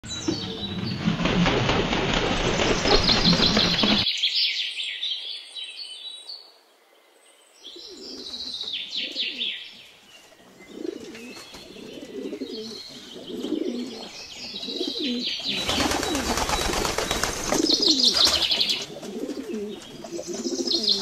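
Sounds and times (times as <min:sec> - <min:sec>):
pigeons cooing: 0:07.8 - 0:09.6, 0:10.4 - 0:21.0.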